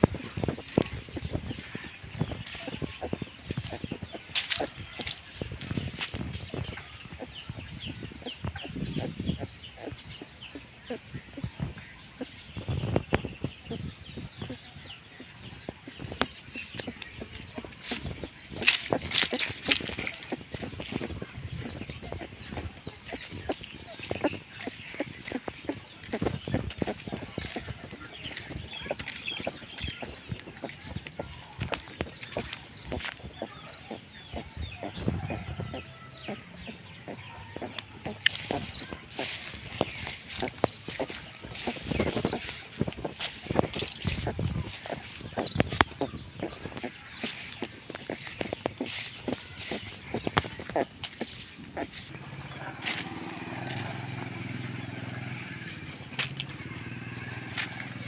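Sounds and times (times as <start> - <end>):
footsteps crunching dry leaves: 0.0 - 8.2, 15.2 - 33.6, 37.6 - 58.0.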